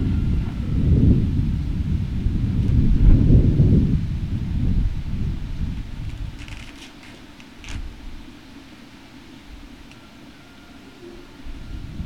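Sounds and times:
low rumble: 0:00.0 - 0:08.3.

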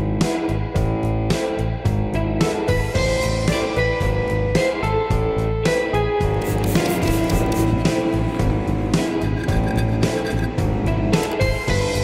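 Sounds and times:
guitar background music: 0:00.0 - 0:12.0.

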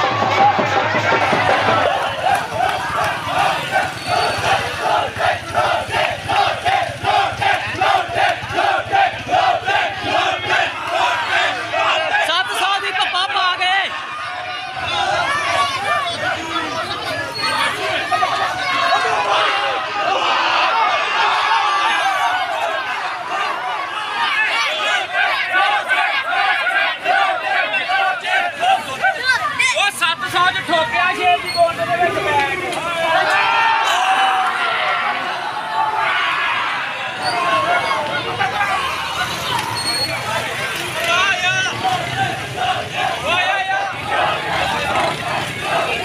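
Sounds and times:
crowd of men shouting and cheering: 0:00.0 - 0:46.0
men chanting in unison: 0:01.6 - 0:12.3, 0:41.7 - 0:46.0.

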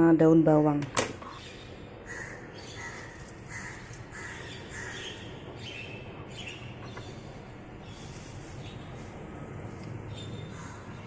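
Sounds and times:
low steady hum: 0:00.0 - 0:11.0
birds calling: 0:01.2 - 0:11.0.

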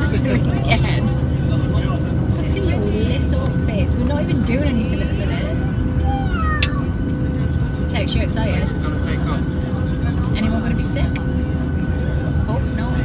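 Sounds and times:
airliner cabin engine rumble: 0:00.0 - 0:13.0
engine whine: 0:00.0 - 0:13.0.

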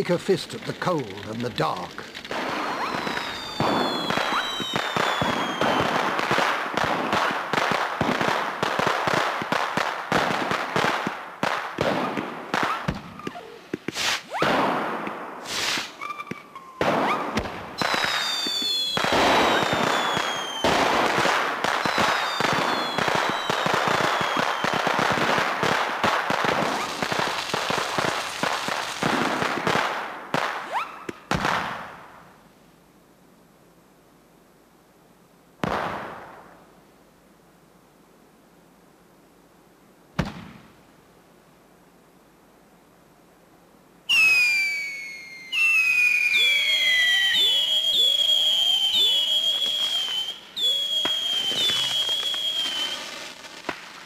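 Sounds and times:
fireworks bangs: 0:00.0 - 0:32.3, 0:35.6 - 0:36.6, 0:40.2 - 0:40.7, 0:44.1 - 0:54.0
fireworks crackling and popping: 0:00.0 - 0:32.4, 0:35.6 - 0:36.7, 0:40.2 - 0:40.8, 0:44.1 - 0:54.0
falling firework whistles: 0:02.3 - 0:07.3, 0:11.8 - 0:25.3, 0:26.4 - 0:29.6, 0:30.5 - 0:31.8, 0:44.1 - 0:54.0.

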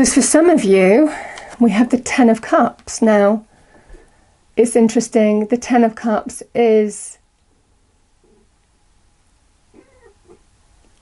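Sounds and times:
faint pitched sounds: 0:09.7 - 0:11.0.

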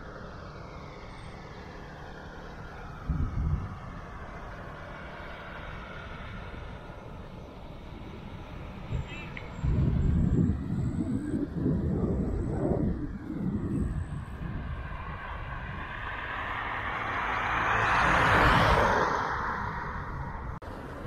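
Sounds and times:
motor vehicle passing: 0:00.0 - 0:21.0
wind buffeting microphone: 0:02.8 - 0:21.0.

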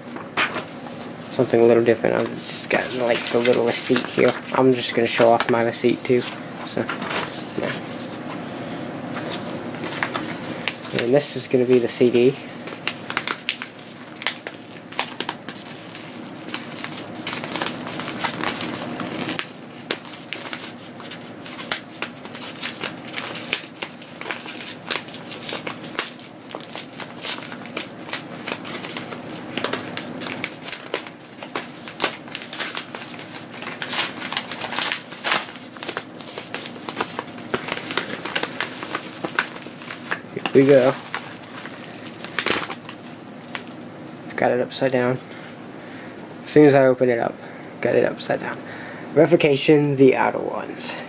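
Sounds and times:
paper mailer crinkling: 0:00.1 - 0:43.8.

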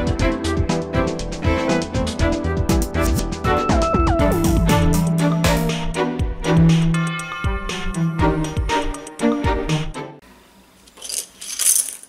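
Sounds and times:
wooden sticks clattering: 0:10.9 - 0:12.0.

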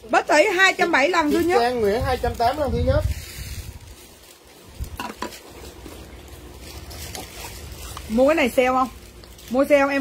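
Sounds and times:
plastic cup rustling and scraping: 0:00.7 - 0:10.0.

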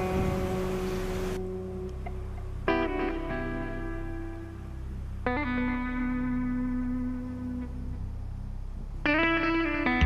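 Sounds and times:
plucked guitar chord: 0:00.0 - 0:08.0, 0:09.0 - 0:10.0
low steady hum: 0:00.0 - 0:10.0.

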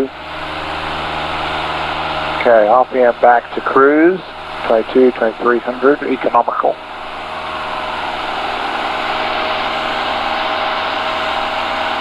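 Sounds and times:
propeller plane engine drone: 0:00.0 - 0:12.0.

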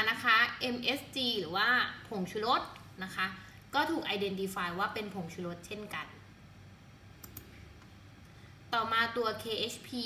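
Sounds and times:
faint low room hum: 0:00.0 - 0:10.0
computer mouse clicks: 0:07.2 - 0:08.0.

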